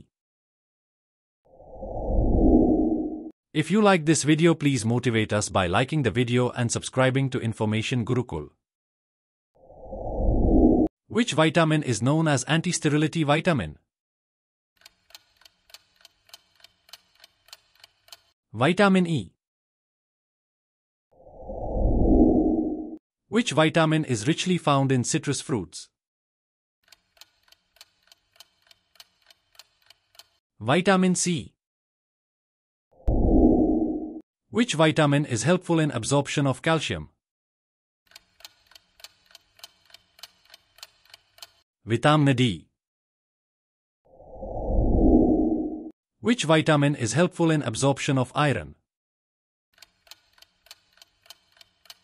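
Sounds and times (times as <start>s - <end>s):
ticking clock: 14.8s - 18.4s, 26.8s - 30.4s, 38.1s - 41.6s, 49.8s - 52.0s.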